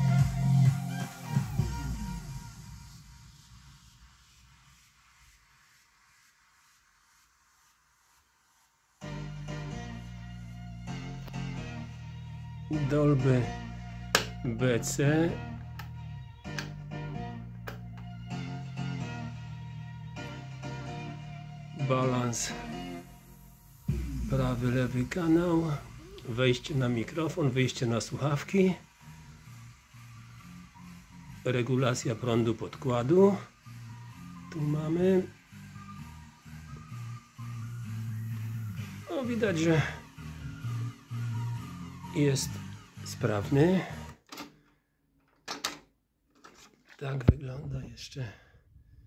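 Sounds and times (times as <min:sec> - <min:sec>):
guitar music from cassette: 0:10.8 - 0:23.0.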